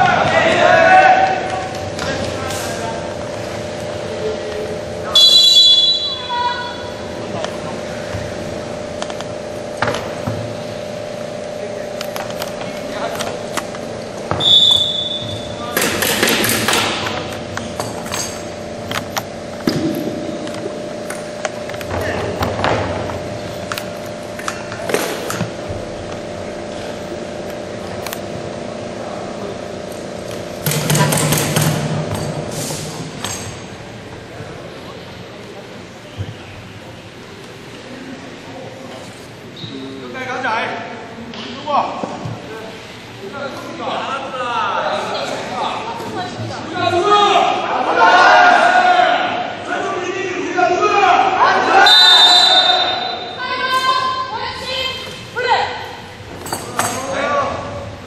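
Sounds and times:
people shouting: 0:00.0 - 0:01.7, 0:46.9 - 0:49.6, 0:50.6 - 0:55.0
hall hum: 0:00.0 - 0:38.6
referee's whistle: 0:05.1 - 0:06.9, 0:14.3 - 0:15.6, 0:51.8 - 0:53.4.

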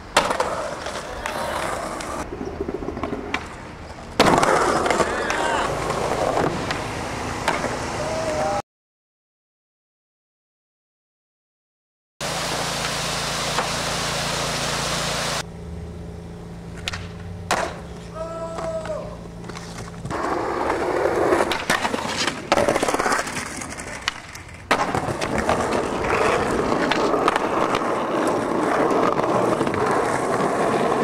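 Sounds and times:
skateboard wheels rolling and clattering: 0:00.0 - 0:08.5, 0:16.7 - 0:31.0
skateboard slamming on concrete: 0:00.1 - 0:08.4, 0:16.8 - 0:17.9, 0:20.0 - 0:31.0
low hum: 0:12.3 - 0:21.5.

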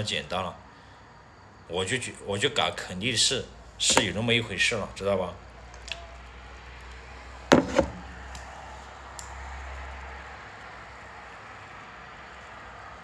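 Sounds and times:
sharp knocks: 0:07.5 - 0:08.0.

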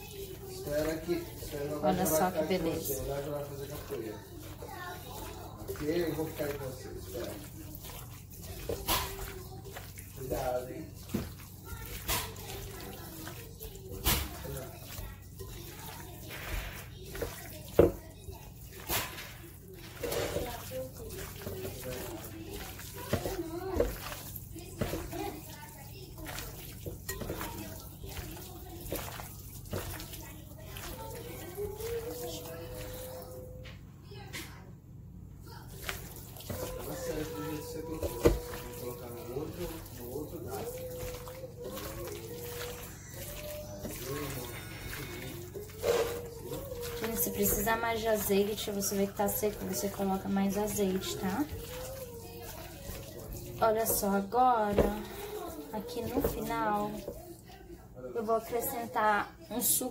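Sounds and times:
wet squelching of meat mixed by hand: 0:00.0 - 0:33.6, 0:35.5 - 0:59.6.

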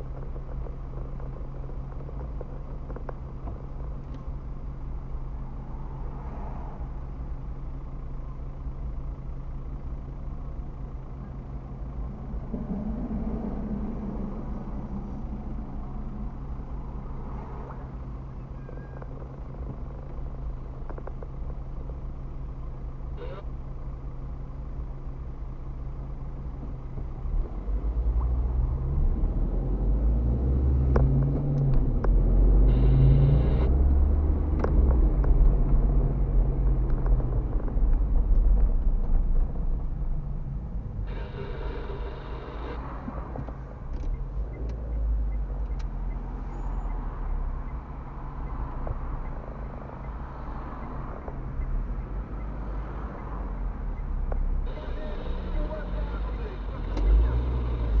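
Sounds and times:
car engine: 0:00.0 - 0:58.0
road noise: 0:00.0 - 0:58.0.

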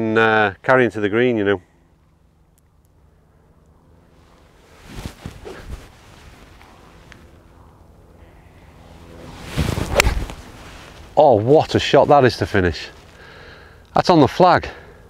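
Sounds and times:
golf club striking ball: 0:09.9 - 0:10.3.

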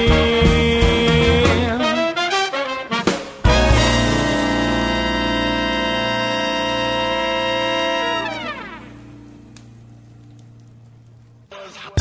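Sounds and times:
wood fire crackling: 0:03.5 - 0:12.0
fire pops: 0:08.3 - 0:12.0.

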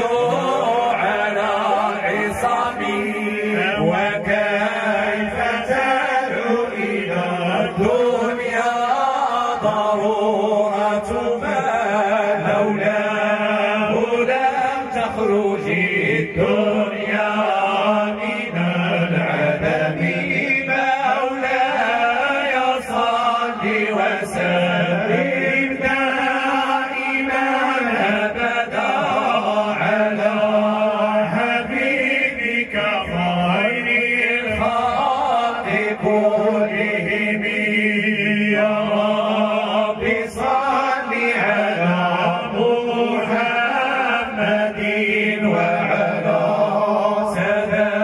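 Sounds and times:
men chanting together: 0:00.0 - 0:48.0.

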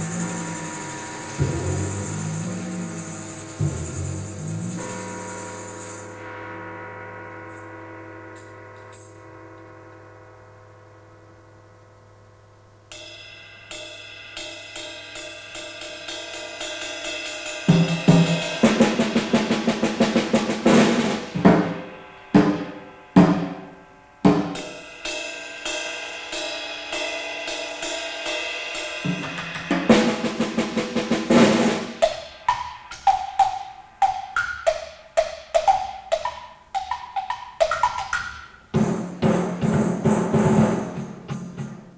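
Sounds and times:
drum strokes and rolls: 0:00.0 - 0:06.2, 0:17.5 - 0:25.5, 0:27.5 - 0:41.9
long ringing percussion note: 0:00.0 - 0:10.4.

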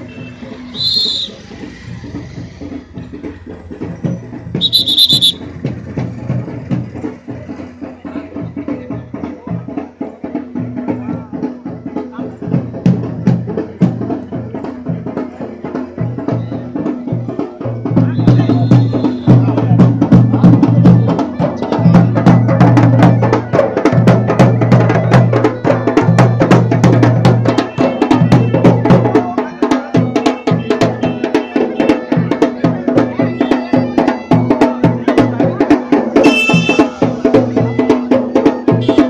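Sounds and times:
fast dense drumming: 0:00.7 - 0:39.0
folk vocals: 0:16.4 - 0:39.0.

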